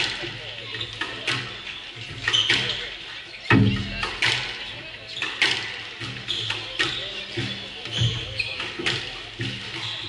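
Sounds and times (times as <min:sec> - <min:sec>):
rackets striking ball: 0:00.0 - 0:10.0
shoes squeaking on wooden floor: 0:00.0 - 0:10.0.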